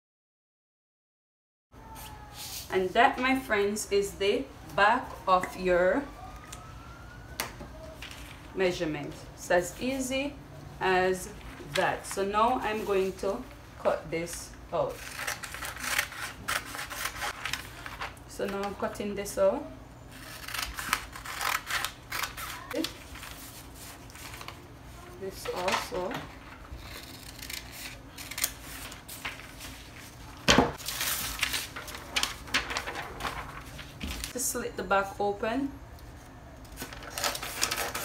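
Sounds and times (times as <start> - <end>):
scissors snipping paper: 15.0 - 17.6, 20.2 - 23.0, 26.8 - 29.0, 36.6 - 38.0
paper rustling on plastic: 20.8 - 34.4, 36.7 - 38.0.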